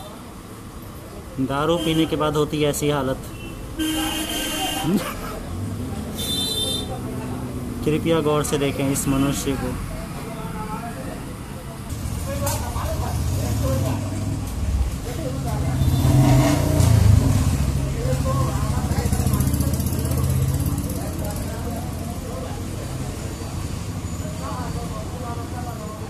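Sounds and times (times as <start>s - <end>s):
vehicle engine passing: 4.9s - 10.0s, 11.9s - 24.7s.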